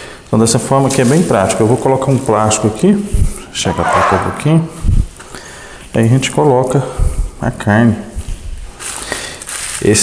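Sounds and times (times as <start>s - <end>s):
plastic sheet crinkling: 0.6s - 2.8s, 8.8s - 10.0s.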